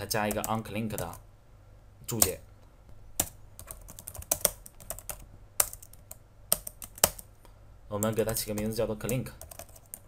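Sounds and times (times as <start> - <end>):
typing on computer keyboard: 3.2 - 7.2, 8.0 - 10.0.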